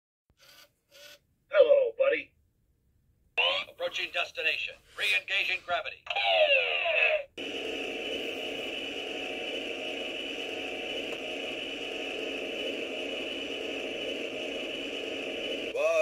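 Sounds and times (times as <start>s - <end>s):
steady rushing hiss: 7.4s - 16.0s.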